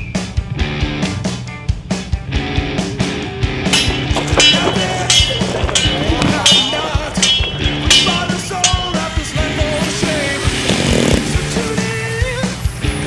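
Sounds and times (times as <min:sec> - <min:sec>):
rock music: 0:00.0 - 0:13.0
steady drum beat: 0:01.5 - 0:09.8.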